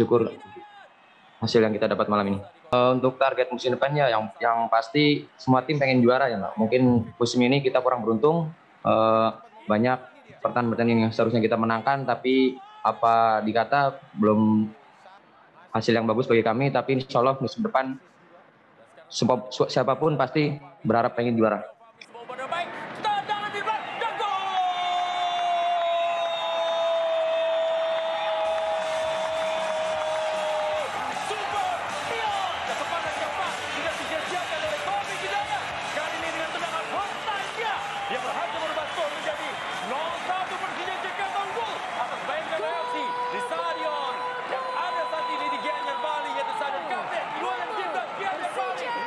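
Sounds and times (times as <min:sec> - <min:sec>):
fast excited commentary: 0:00.0 - 0:18.0, 0:18.8 - 0:27.9, 0:28.5 - 0:49.0
commentator long held shout: 0:22.6 - 0:49.0.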